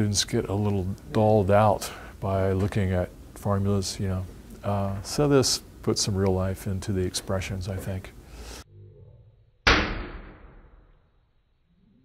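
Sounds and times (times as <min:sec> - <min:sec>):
exploding wire bang: 0:09.7 - 0:10.9.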